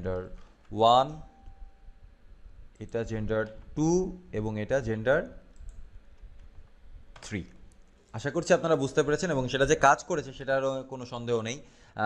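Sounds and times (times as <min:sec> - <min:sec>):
person speaking: 0:00.0 - 0:01.5, 0:02.8 - 0:05.6, 0:07.1 - 0:11.6.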